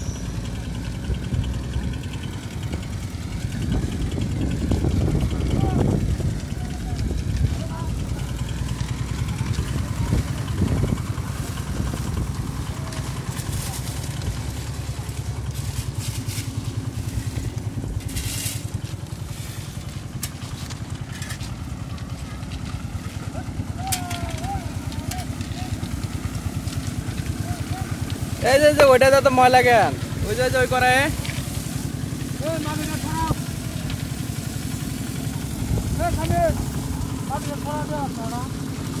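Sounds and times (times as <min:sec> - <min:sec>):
concrete mixer engine running: 0:00.0 - 0:39.0
shovels scraping in stone chips: 0:12.9 - 0:22.6.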